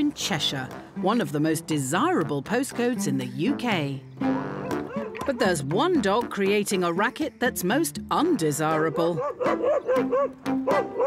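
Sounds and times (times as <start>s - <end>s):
background music: 0.0s - 11.0s
dog barking: 4.5s - 5.4s, 8.9s - 11.0s.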